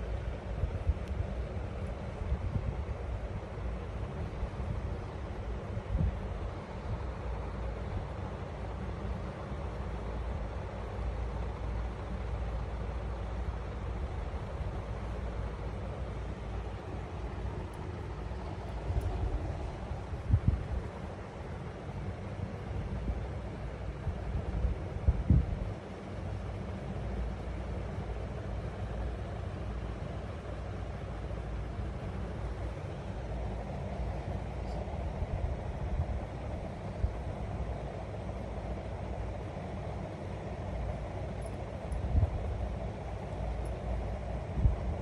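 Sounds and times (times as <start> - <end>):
low rumbling background noise: 0.0 - 45.0.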